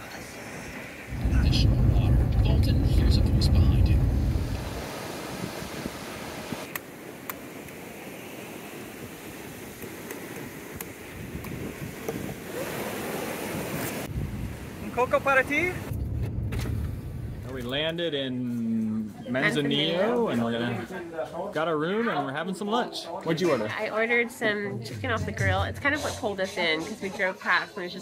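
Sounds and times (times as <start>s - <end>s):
loud low rumble: 1.1s - 4.8s.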